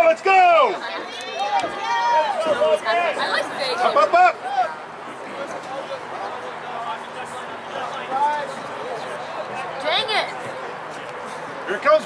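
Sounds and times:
drawn-out shout: 0.0 - 5.0
background murmur: 0.0 - 12.0.

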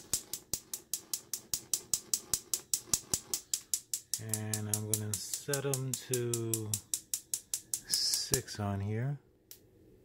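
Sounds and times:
gas stove spark igniter clicking: 2.9 - 8.4.

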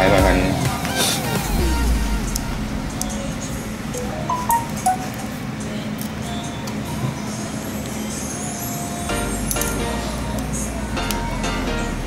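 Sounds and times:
background music: 0.0 - 6.7, 8.9 - 12.0
low rumble: 1.4 - 5.8.

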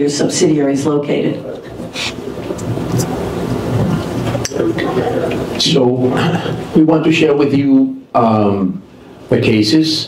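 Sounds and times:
microphone handling noise: 1.6 - 5.7.

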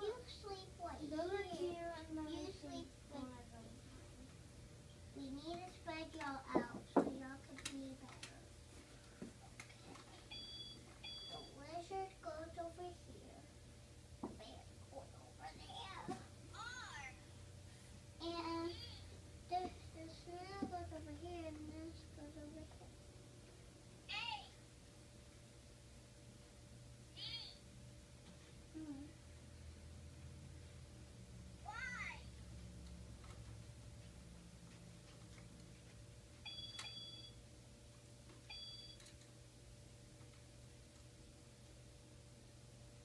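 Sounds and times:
girl singing softly: 18.2 - 22.9, 28.7 - 29.2
toy laptop electronic beeps: 36.5 - 37.3, 38.5 - 39.0.

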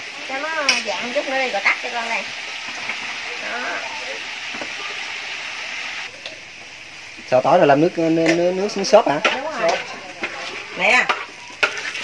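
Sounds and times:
chicken frying in hot oil: 0.0 - 12.0.

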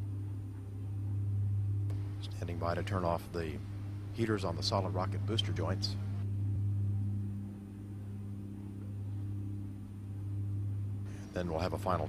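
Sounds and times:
faint high-pitched whine: 0.0 - 12.0
low electrical hum: 0.0 - 12.0.

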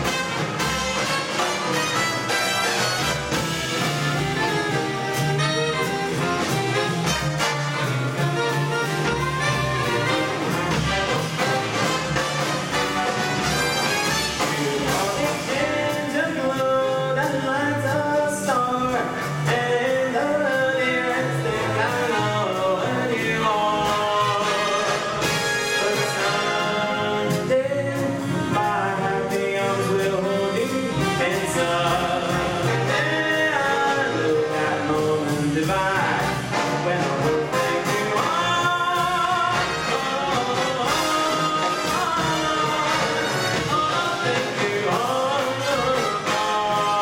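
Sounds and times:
saxophones: 0.0 - 14.8
trumpets: 0.0 - 15.6, 23.9 - 27.8, 30.5 - 47.0
brass and saxophone chords: 0.0 - 47.0
drums: 0.0 - 47.0
piano: 0.0 - 47.0
trombones: 0.0 - 47.0
upright bass: 0.0 - 47.0.

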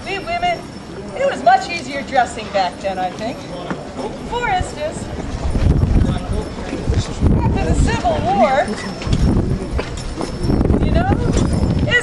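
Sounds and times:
indistinct voices: 0.0 - 12.0
low outdoor background noise: 0.0 - 12.0.

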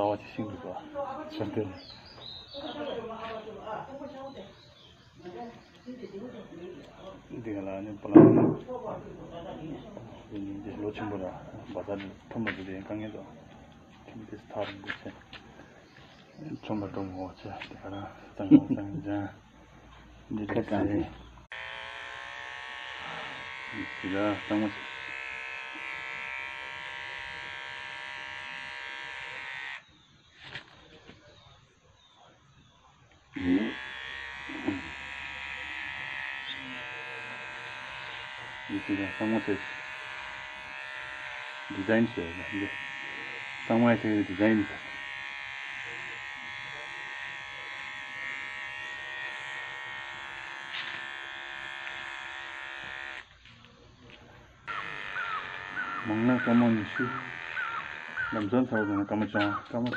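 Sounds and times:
electric hair clippers buzzing: 5.3 - 15.5, 20.2 - 30.8, 33.2 - 53.5, 54.6 - 59.9
crow cawing: 54.7 - 59.7.

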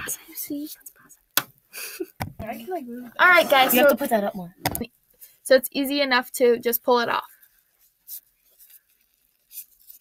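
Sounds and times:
gloved hands rubbing chicken skin: 7.4 - 10.0.

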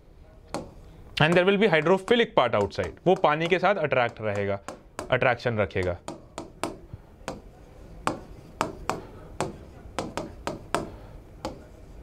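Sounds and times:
pen tapping on writing board: 0.5 - 5.2, 5.8 - 11.7.

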